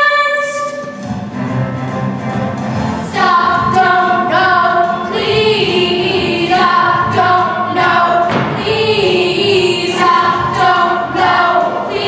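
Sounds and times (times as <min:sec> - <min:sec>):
young voices singing: 0:02.7 - 0:12.0.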